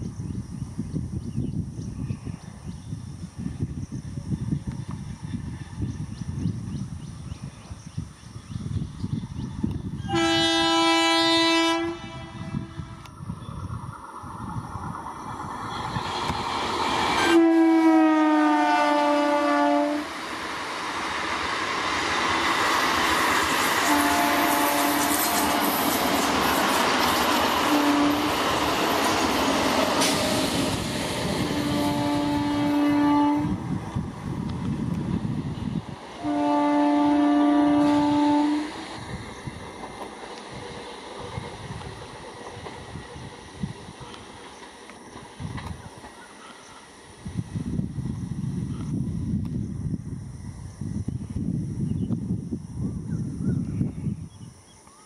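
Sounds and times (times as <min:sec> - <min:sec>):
train horn blasts: 0:10.0 - 0:13.1, 0:17.2 - 0:20.2, 0:23.8 - 0:26.0, 0:27.6 - 0:28.5, 0:31.5 - 0:33.6, 0:36.2 - 0:38.8
train coaches rushing past: 0:10.0 - 0:48.8
wheel and track noise: 0:12.0 - 0:17.6, 0:20.0 - 0:36.3, 0:37.7 - 0:50.0.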